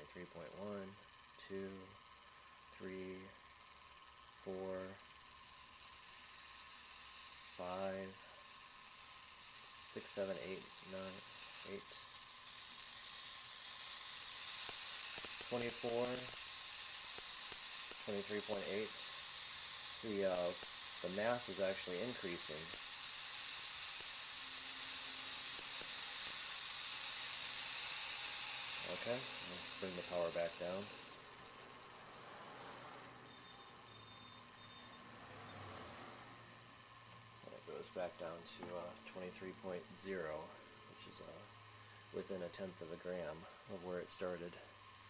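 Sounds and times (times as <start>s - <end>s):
high-pitched corona discharge hiss: 0.0s - 36.6s.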